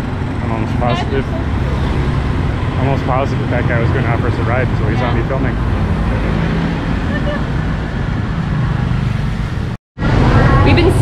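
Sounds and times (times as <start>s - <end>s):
street traffic of passing engines: 0.0s - 11.0s.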